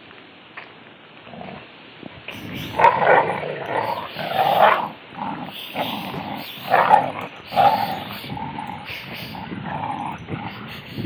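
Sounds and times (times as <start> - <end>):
dogs growling in play: 1.2 - 1.7, 2.3 - 11.0.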